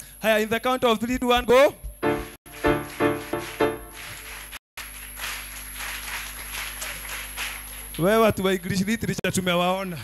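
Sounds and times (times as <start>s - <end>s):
audience clapping in rhythm: 2.0s - 8.3s.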